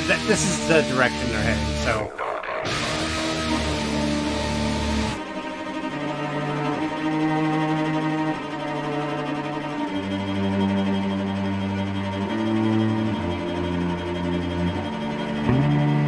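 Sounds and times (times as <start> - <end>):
bowed strings slow chords: 0.0 - 16.0.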